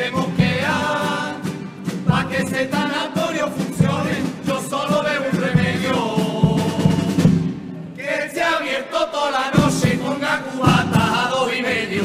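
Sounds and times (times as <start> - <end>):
male group singing together: 0.0 - 7.4, 8.0 - 12.0
steady drum beat: 0.0 - 7.6, 9.6 - 11.4
guitars: 0.0 - 8.0.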